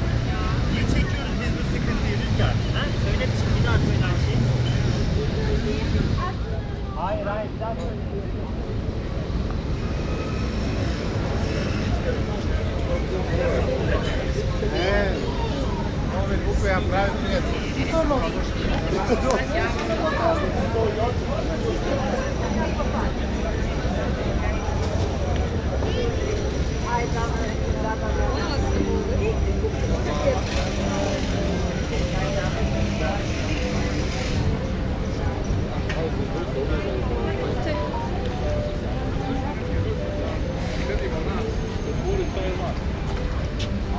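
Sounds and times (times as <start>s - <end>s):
city traffic rumble: 0.0s - 43.9s
indistinct conversation: 0.0s - 43.9s.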